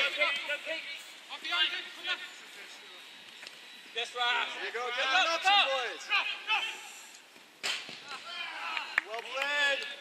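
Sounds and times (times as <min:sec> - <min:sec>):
players shouting: 0:03.9 - 0:07.1.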